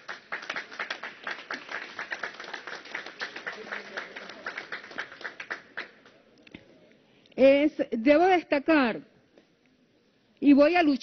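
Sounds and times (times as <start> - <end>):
crowd applauding: 0.0 - 6.2.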